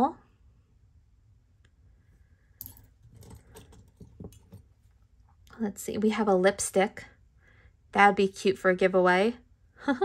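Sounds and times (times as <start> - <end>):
metal brooches clinking: 2.6 - 4.7.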